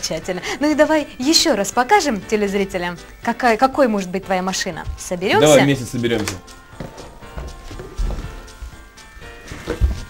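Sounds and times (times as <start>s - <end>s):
music with sustained tones: 0.0s - 10.0s.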